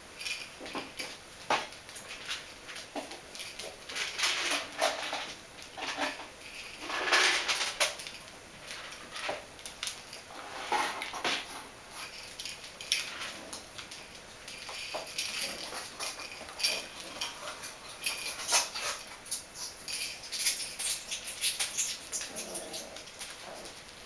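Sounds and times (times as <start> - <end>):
puppies scuffling on hard floor: 0.2 - 24.0.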